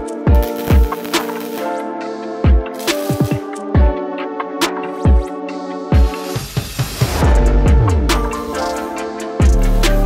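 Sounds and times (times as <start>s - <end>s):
electronic music with held chords: 0.0s - 10.0s.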